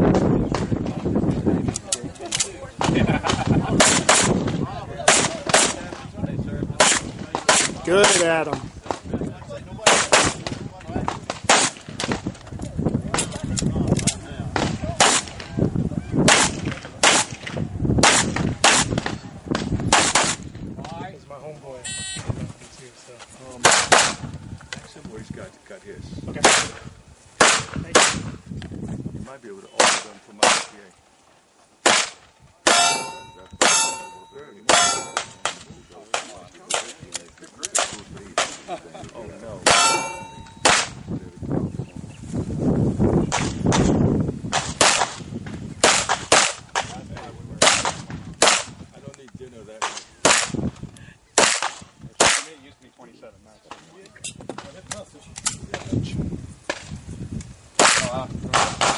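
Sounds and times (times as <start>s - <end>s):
pistol shots: 3.8s - 5.9s, 6.8s - 8.4s, 9.8s - 10.6s, 11.3s - 12.2s, 14.6s - 15.5s, 16.3s - 20.4s, 27.4s - 28.2s, 31.8s - 36.9s, 39.6s - 41.0s, 43.3s - 45.2s, 45.8s - 47.0s, 47.6s - 48.8s, 51.4s - 52.5s, 57.8s - 58.9s
metallic clang of steel targets: 32.7s - 36.9s, 39.6s - 40.9s.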